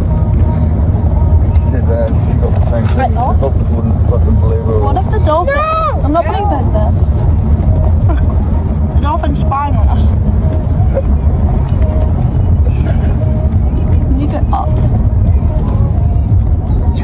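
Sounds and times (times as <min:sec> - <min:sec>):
car cabin rumble: 0:00.0 - 0:17.0.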